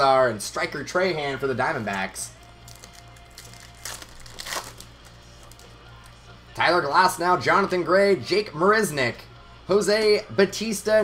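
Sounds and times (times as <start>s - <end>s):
low steady hum: 0.0s - 11.0s
foil card pack crinkling: 2.6s - 5.8s.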